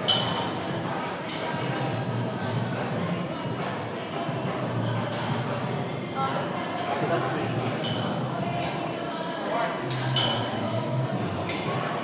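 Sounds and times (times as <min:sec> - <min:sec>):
gym room noise: 0:00.0 - 0:12.0.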